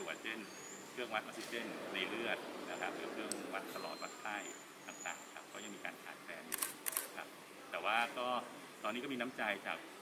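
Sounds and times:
camera shutter clicks: 0:06.5 - 0:07.2.

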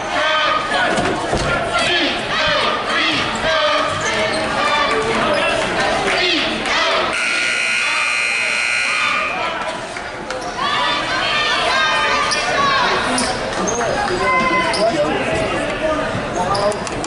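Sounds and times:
voices and shouts echoing: 0:00.0 - 0:17.0
scoreboard horn: 0:07.1 - 0:09.5.

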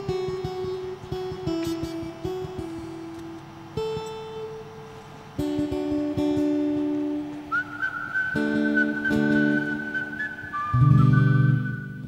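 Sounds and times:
acoustic guitar chords: 0:00.0 - 0:12.0
person whistling: 0:07.4 - 0:12.0.

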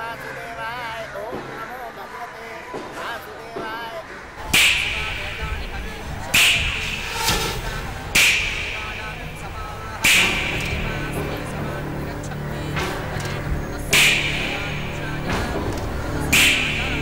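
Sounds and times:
sharp loud musical hits: 0:04.4 - 0:17.0.

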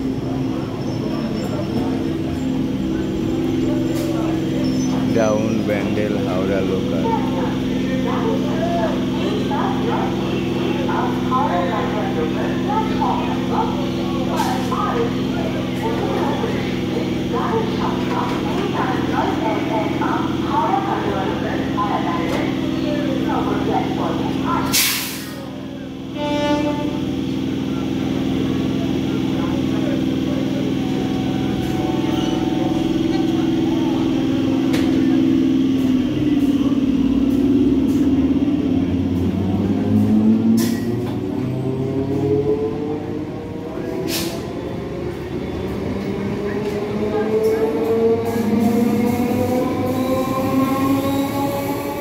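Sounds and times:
electric train passing: 0:00.0 - 0:24.7
train equipment humming: 0:00.0 - 0:52.0
train pulling away: 0:00.0 - 0:52.0
air brake hiss: 0:24.7 - 0:25.4, 0:44.1 - 0:44.4.

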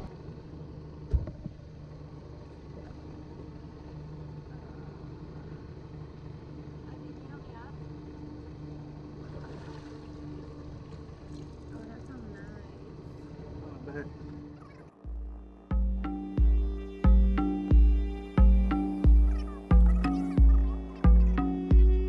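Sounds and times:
outboard motor idling: 0:00.0 - 0:22.0.

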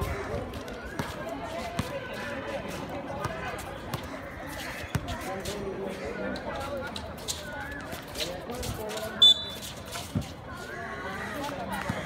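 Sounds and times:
chatter of people: 0:00.0 - 0:12.0.

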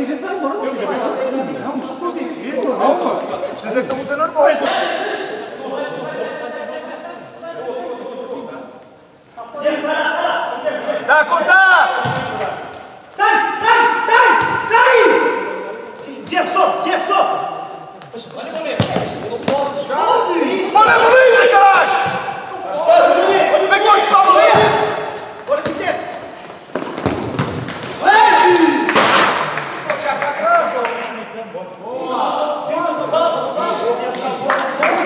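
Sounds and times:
players shouting: 0:13.2 - 0:17.7, 0:18.8 - 0:26.1, 0:27.9 - 0:29.6
ball thudding on court floor: 0:22.0 - 0:22.3, 0:26.7 - 0:28.0.

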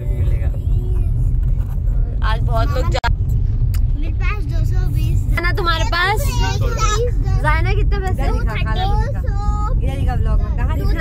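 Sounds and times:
car engine and road noise: 0:00.0 - 0:11.0
voices talking: 0:04.2 - 0:11.0.

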